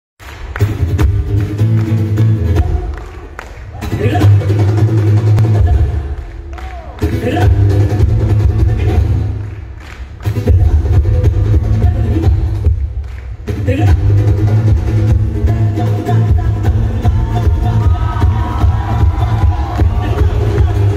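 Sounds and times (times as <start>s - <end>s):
loud live band music: 0.2s - 20.9s
hand drum: 10.2s - 20.9s.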